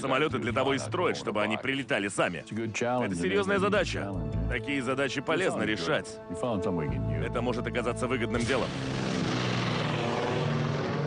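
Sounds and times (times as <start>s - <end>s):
propeller aircraft engines droning: 7.1s - 11.0s.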